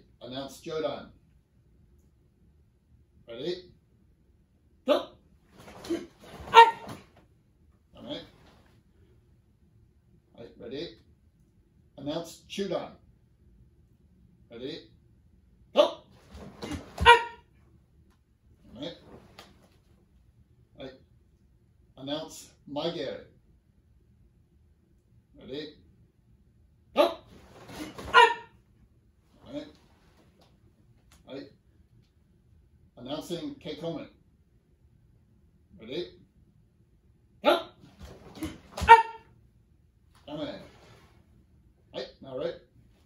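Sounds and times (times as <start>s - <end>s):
loud karate shout: 5.8s - 7.0s, 16.6s - 17.4s, 27.0s - 28.5s, 37.4s - 39.2s.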